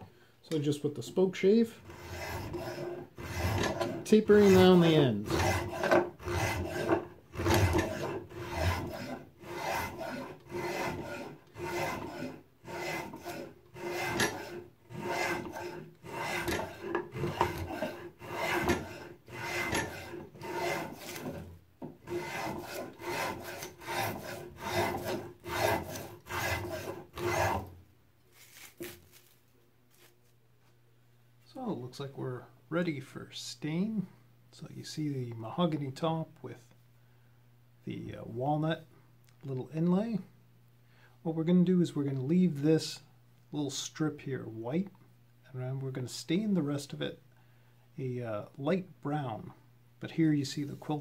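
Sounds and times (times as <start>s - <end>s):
spokeshave cutting wood: 1.8s - 27.8s.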